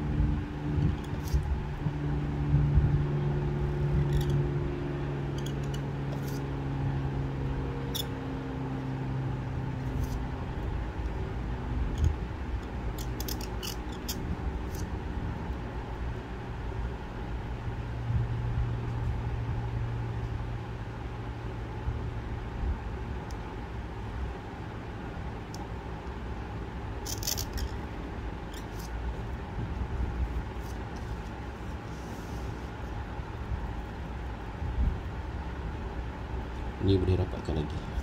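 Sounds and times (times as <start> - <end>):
low background hum: 0.0 - 38.0.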